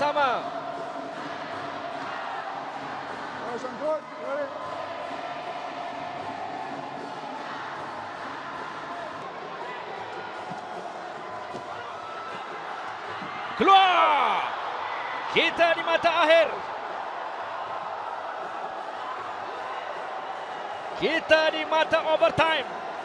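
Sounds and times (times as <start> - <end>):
crowd shouts: 0.0 - 23.0
indoor arena crowd din: 0.0 - 23.0.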